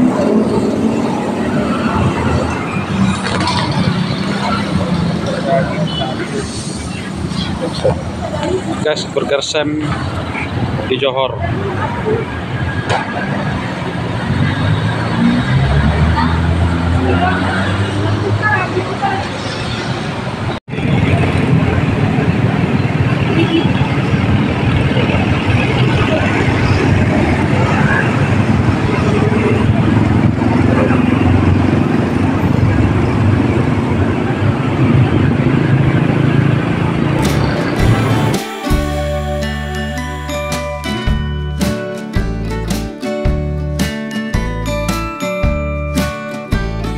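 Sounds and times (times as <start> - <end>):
indistinct voices: 0.0 - 31.6, 33.8 - 41.6
cars and motorbikes passing: 0.0 - 46.9.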